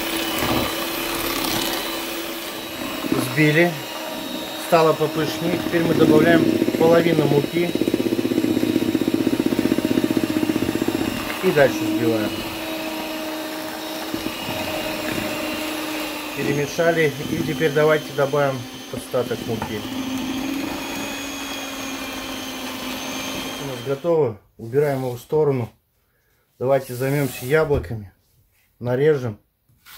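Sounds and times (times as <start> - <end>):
electric hand mixer whisking batter: 0.0 - 24.2.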